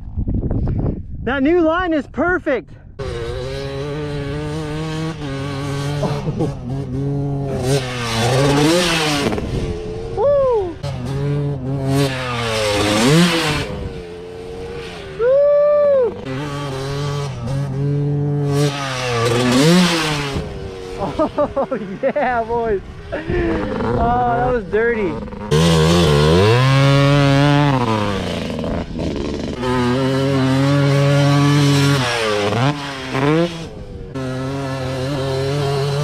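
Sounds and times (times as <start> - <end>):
dirt bike engine revving: 3.0 - 36.0.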